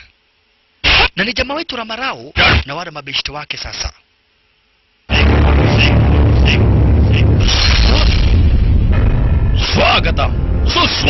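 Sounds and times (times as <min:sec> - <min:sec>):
deep bass boom: 0:05.1 - 0:11.0.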